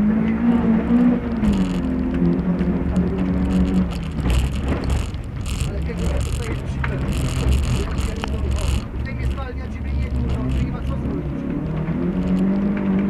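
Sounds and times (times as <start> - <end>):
rally car engine: 0.0 - 13.0
tyres rushing on dirt: 0.0 - 13.0.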